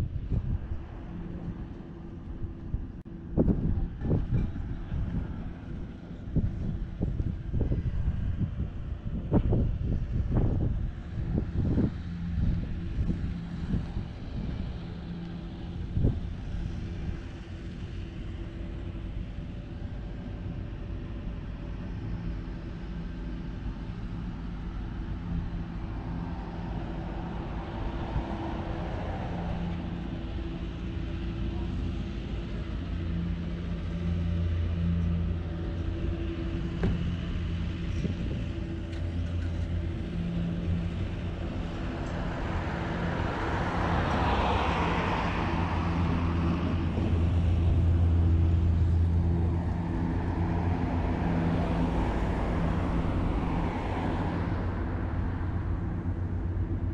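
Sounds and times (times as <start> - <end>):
cars passing: 0.0 - 56.9
low engine hum: 0.0 - 56.9.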